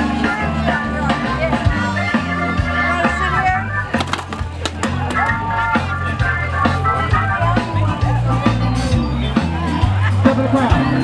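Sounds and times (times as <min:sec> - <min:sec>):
blues-rock band playing: 0:00.0 - 0:11.0.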